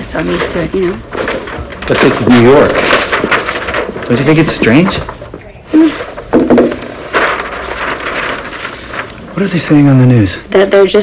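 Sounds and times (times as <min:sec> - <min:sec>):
paper sheets rustling: 0:00.3 - 0:10.4.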